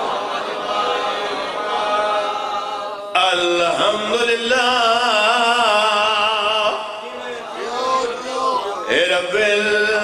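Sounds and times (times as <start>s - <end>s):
men chanting together: 0.0s - 4.2s, 5.6s - 10.0s.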